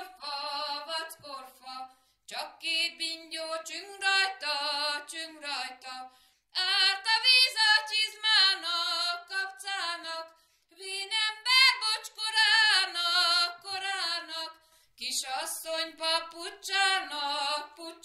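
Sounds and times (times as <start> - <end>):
woman singing unaccompanied: 0.0 - 18.0.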